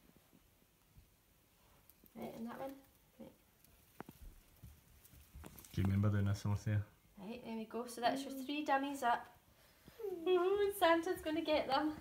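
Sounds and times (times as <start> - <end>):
faint handling rustles: 3.6 - 6.5.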